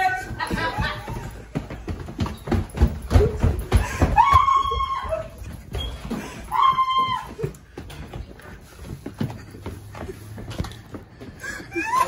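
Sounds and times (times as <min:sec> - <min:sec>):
hurried footsteps and shuffling: 0:00.0 - 0:12.0
woman wailing: 0:04.0 - 0:05.5, 0:06.5 - 0:07.5, 0:11.4 - 0:12.0.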